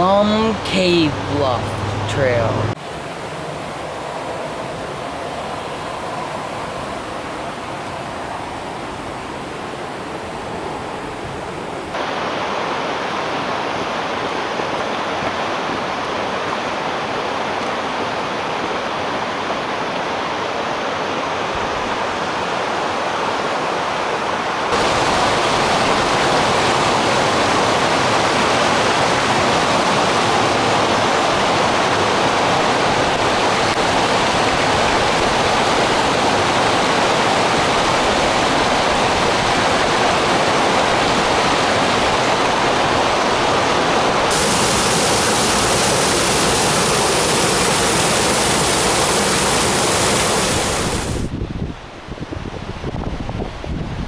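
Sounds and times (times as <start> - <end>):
rushing creek water: 0.0 - 51.3.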